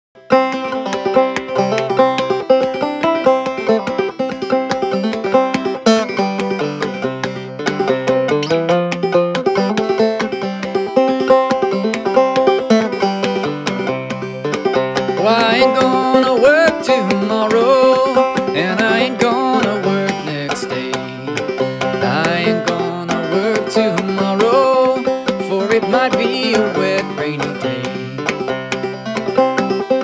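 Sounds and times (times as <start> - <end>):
banjo playing: 0.2 - 30.0
man singing: 15.1 - 28.5.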